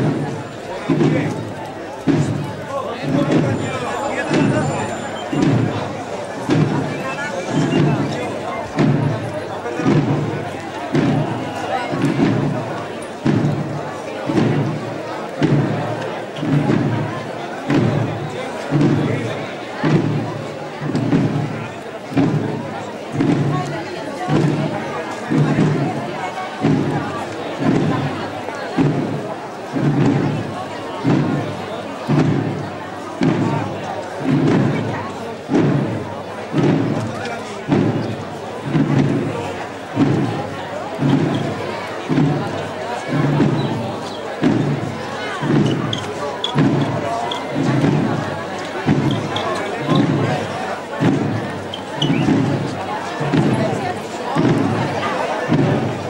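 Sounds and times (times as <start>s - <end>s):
crowd murmuring: 0.0s - 56.0s
drum beating slowly: 0.0s - 56.0s.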